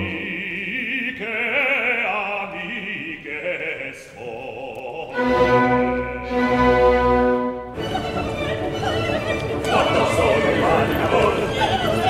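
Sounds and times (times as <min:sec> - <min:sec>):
operatic voices singing: 0:00.0 - 0:07.2, 0:07.8 - 0:12.0
orchestra: 0:00.0 - 0:12.0.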